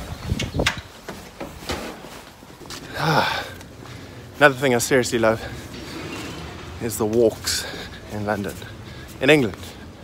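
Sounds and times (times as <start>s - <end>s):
faint outdoor background noise: 0.0s - 10.0s
footsteps walking: 0.8s - 4.1s, 5.4s - 10.0s.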